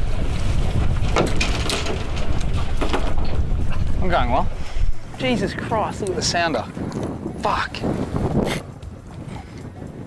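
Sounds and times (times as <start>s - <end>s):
sea washing against hull: 0.0s - 10.0s
wind buffeting microphone: 0.0s - 10.0s.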